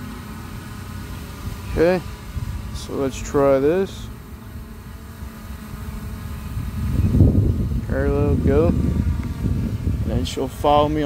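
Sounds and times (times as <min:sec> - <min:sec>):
faint steady hum: 0:00.0 - 0:11.0
wind buffeting microphone: 0:01.1 - 0:11.0.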